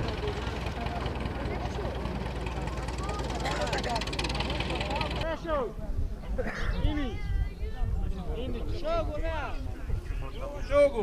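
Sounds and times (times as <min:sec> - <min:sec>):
tractor engine running: 0:00.0 - 0:05.2
faint voices: 0:00.0 - 0:11.0.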